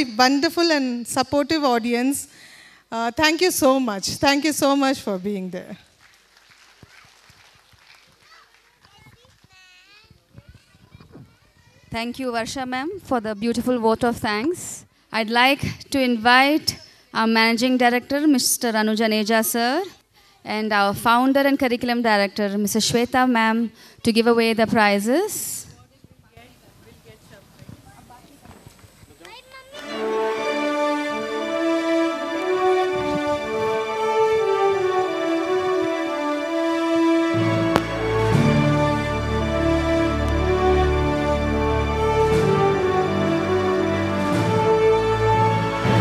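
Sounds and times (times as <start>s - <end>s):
faint auditorium room noise: 0.0s - 46.0s
small children chattering: 8.2s - 12.0s, 29.1s - 30.6s
music: 29.7s - 46.0s.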